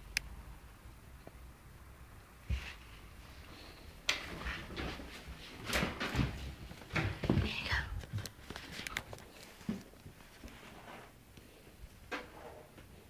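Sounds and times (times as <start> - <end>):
person whispering: 7.4 - 8.1.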